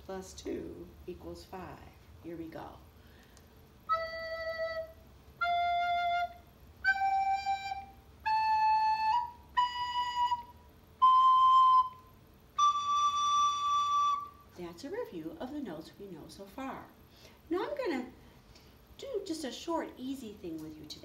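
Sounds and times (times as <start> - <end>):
recorder playing rising scale: 3.9 - 14.4.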